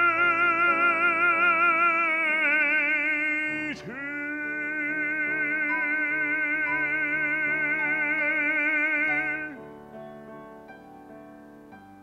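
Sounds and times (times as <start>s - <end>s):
baritone singing: 0.0s - 9.8s.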